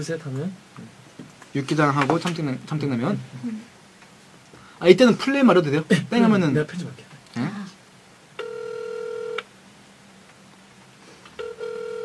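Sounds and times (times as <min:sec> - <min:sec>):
telephone ringback tone: 0:08.4 - 0:09.4, 0:11.4 - 0:12.0.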